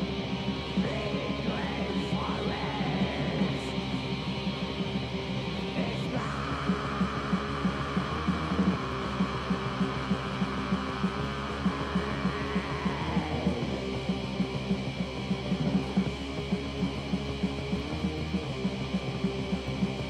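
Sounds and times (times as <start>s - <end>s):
constant hum: 0.0s - 20.0s
lo-fi black metal music: 0.0s - 20.0s.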